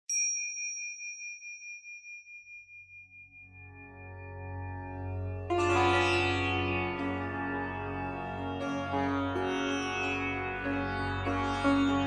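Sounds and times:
small bell ringing: 0:00.1 - 0:03.6.

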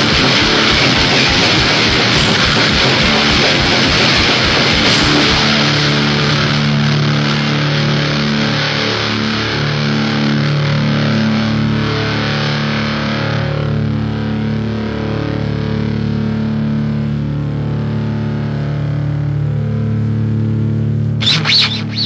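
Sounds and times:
heavy metal distorted guitar chords: 0:00.0 - 0:22.0.

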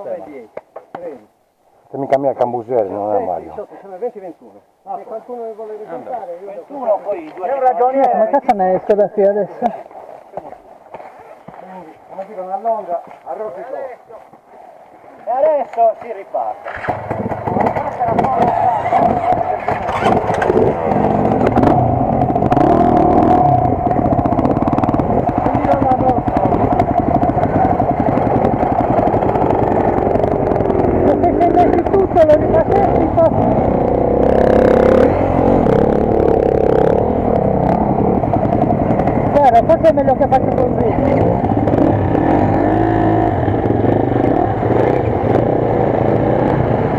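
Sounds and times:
dirt bike engines running: 0:01.9 - 0:46.9.

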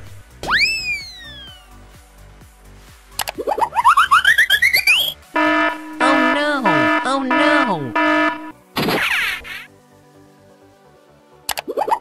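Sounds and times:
quiet background music: 0:00.0 - 0:12.0
falling whistle: 0:00.5 - 0:01.7
short rising blips: 0:04.8 - 0:08.5.

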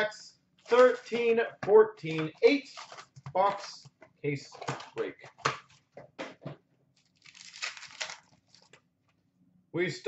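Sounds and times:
wrapper crinkling and tearing: 0:07.0 - 0:08.8.

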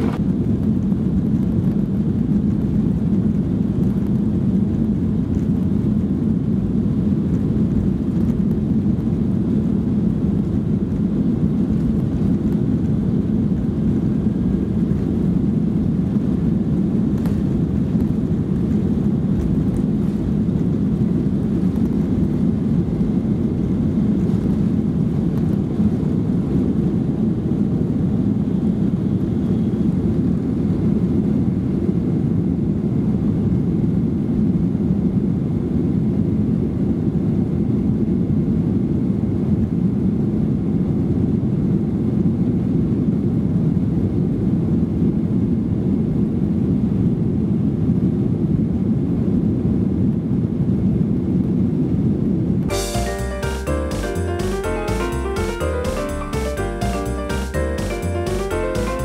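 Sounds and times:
jet engines at takeoff inside cabin: 0:00.0 - 0:52.7.

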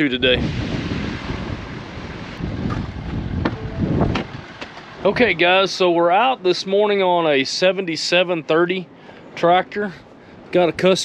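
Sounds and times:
wind buffeting microphone: 0:00.0 - 0:05.7.

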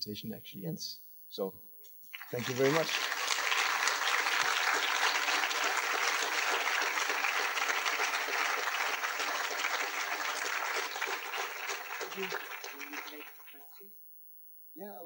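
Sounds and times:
audience applauding: 0:02.2 - 0:13.8.

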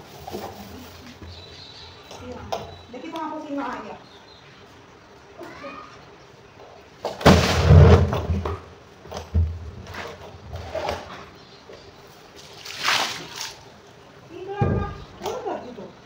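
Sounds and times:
small splashes and knocks: 0:07.0 - 0:11.3, 0:12.3 - 0:13.8
plastic drum thud: 0:07.1 - 0:08.7
water gushing onto concrete: 0:12.4 - 0:13.7.

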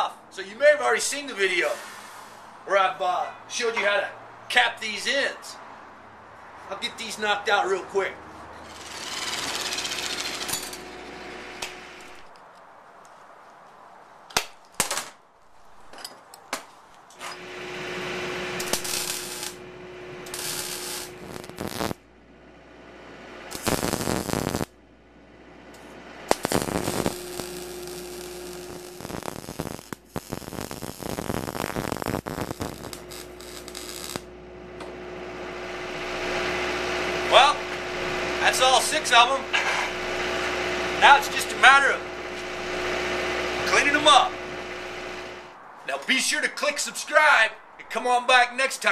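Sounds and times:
welder hum: 0:08.6 - 0:12.4, 0:17.2 - 0:45.6
welder crackling: 0:08.6 - 0:12.5, 0:17.3 - 0:22.1, 0:22.7 - 0:45.6.

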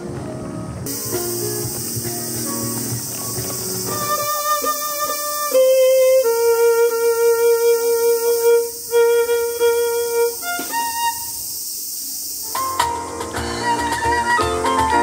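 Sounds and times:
solo violin melody: 0:00.9 - 0:11.5, 0:13.3 - 0:15.0.

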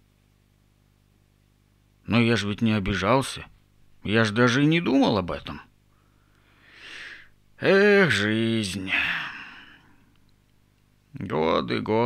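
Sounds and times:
man sighing: 0:08.8 - 0:10.1.

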